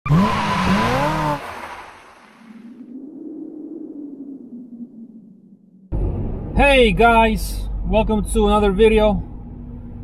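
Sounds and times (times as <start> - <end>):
sports car engine revving: 0.1 - 1.8.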